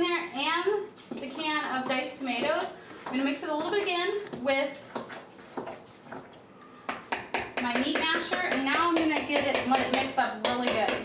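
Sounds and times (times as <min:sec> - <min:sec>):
woman's voice: 0:00.0 - 0:04.8, 0:07.6 - 0:11.0.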